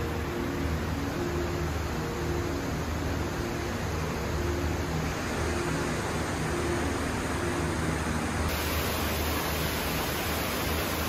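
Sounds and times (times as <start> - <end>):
indoor waterfall rushing: 0.0 - 11.0.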